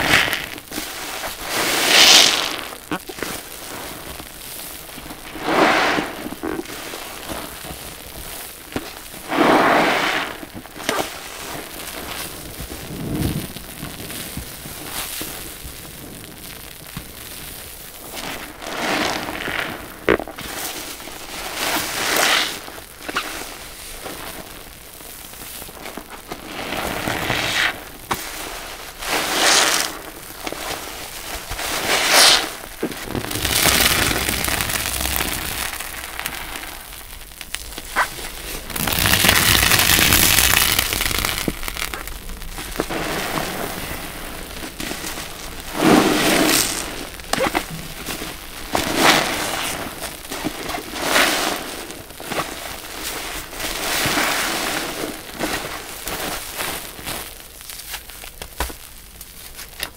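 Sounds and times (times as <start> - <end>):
sponges squelching in suds: 25.9 - 58.0.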